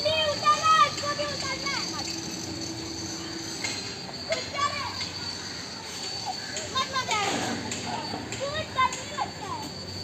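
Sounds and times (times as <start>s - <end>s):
children calling out: 0.0s - 10.0s
outdoor background noise: 0.0s - 10.0s.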